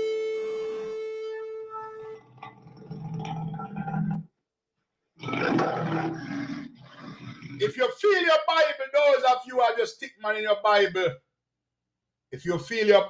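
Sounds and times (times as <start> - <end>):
man speaking: 7.6 - 11.2, 12.4 - 13.0.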